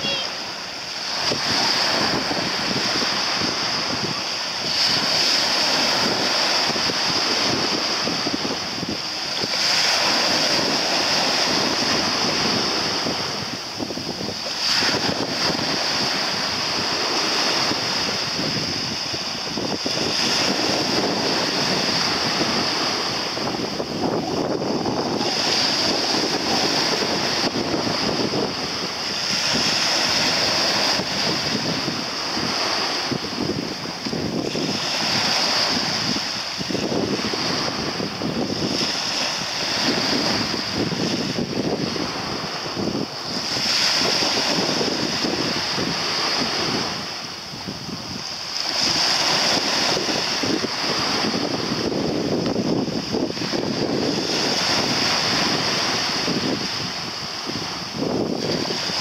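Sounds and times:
small sea waves: 0.0 - 59.0
wind buffeting microphone: 0.0 - 59.0.

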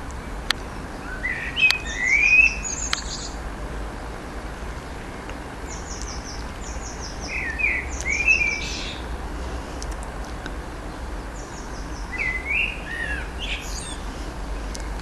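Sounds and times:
songbird singing: 0.0 - 15.0.

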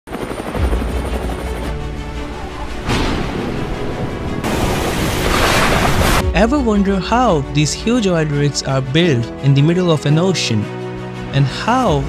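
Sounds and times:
helicopter rotor chopping: 0.1 - 6.2
music: 0.1 - 12.0.

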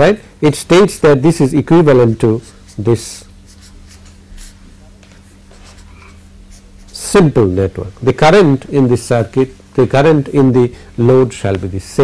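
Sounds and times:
steady low hum: 0.0 - 12.0
scratching of writing: 2.3 - 7.0.

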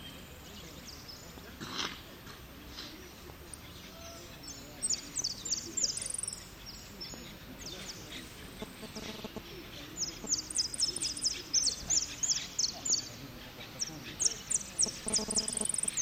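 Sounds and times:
finch singing high chirps: 3.7 - 8.2, 9.8 - 16.0.

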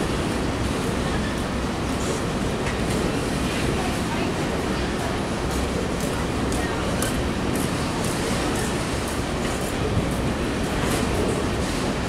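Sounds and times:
train wheels rumbling on rail: 0.0 - 12.0.

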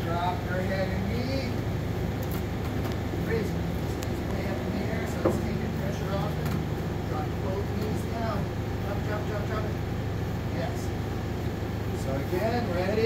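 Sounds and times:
fans humming: 0.0 - 13.0.

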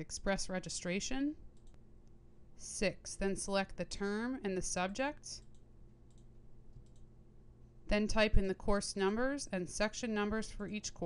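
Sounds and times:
woman speaking: 0.0 - 1.4, 2.6 - 5.4, 7.9 - 11.0.

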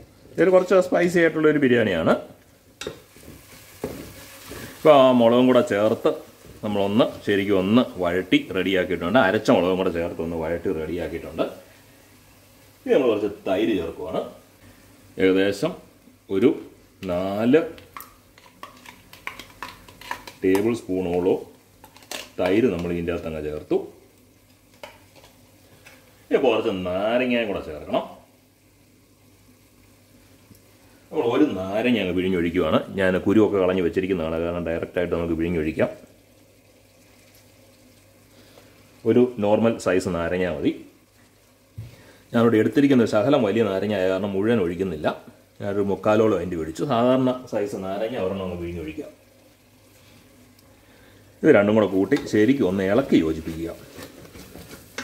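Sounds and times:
masala sizzling: 0.0 - 55.0.

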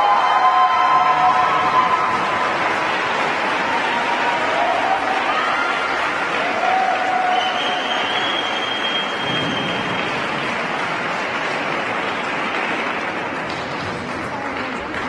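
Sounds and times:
audience applauding: 0.0 - 15.0
high whistle: 7.2 - 10.0.

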